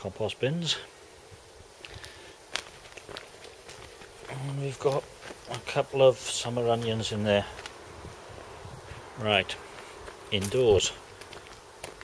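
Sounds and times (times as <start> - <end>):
footsteps on concrete: 1.8 - 7.8, 8.8 - 12.0.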